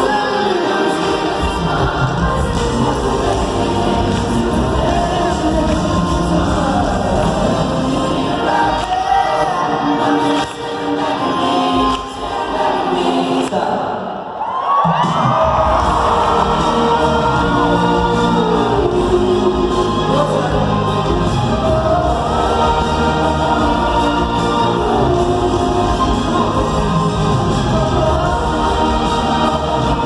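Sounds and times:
live pop band with deep bass: 0:00.0 - 0:14.1, 0:14.7 - 0:30.0
choir-like singing voices: 0:00.0 - 0:30.0.

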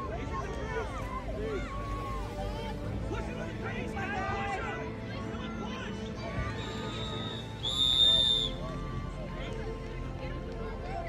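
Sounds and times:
scattered voices: 0:00.0 - 0:11.0
referee's whistle blast: 0:06.6 - 0:08.6.

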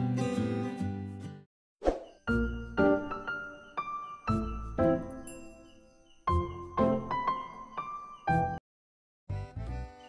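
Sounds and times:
acoustic guitar background music: 0:00.0 - 0:01.4
soft music with ringing notes: 0:02.2 - 0:08.6.

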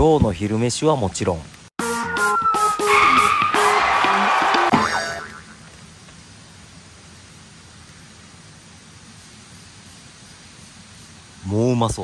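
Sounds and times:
faint outdoor background hiss: 0:00.0 - 0:12.0
comic sound-effect jingle: 0:01.8 - 0:05.6.

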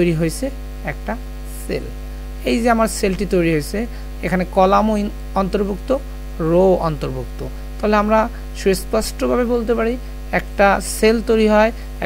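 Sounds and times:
low electrical mains hum: 0:00.0 - 0:12.0
person speaking: 0:00.0 - 0:12.0.

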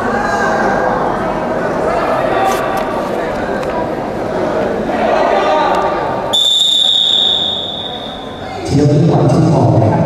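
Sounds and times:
referee's whistle long blast: 0:06.3 - 0:08.5.

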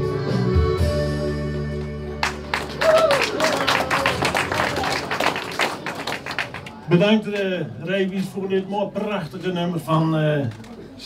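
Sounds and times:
audience applause: 0:02.2 - 0:06.9.

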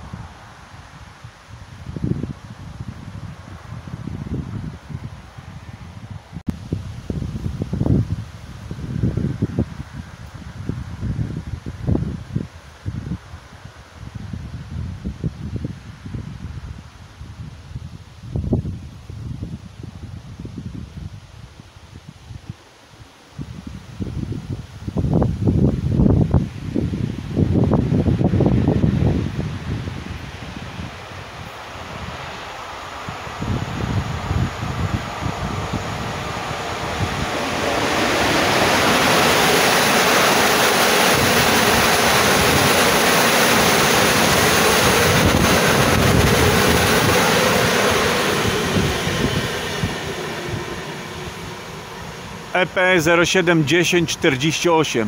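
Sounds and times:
wind buffeting microphone: 0:00.0 - 0:22.6, 0:23.4 - 0:54.1
train wheels rushing on rail: 0:27.4 - 0:54.6.

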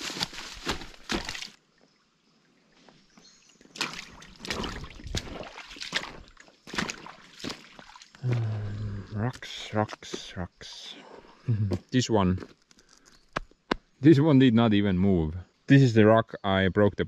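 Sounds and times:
footsteps splashing through stream: 0:00.0 - 0:01.6, 0:03.6 - 0:10.3.

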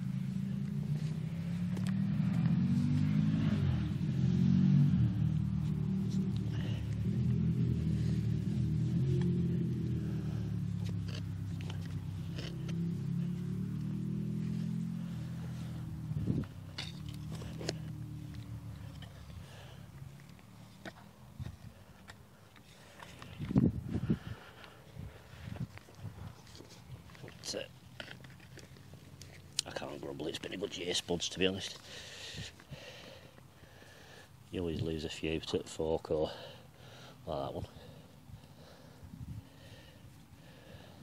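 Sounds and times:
low vehicle engine drone: 0:00.0 - 0:41.0.

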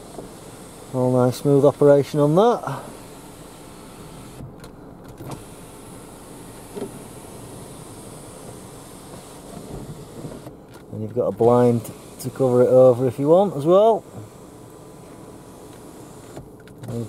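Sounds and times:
sunroof motor running: 0:00.0 - 0:17.0.

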